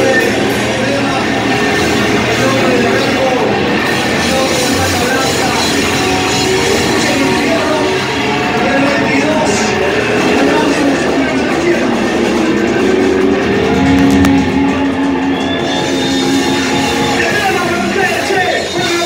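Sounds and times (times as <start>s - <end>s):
live heavy metal band: 0.0s - 19.0s.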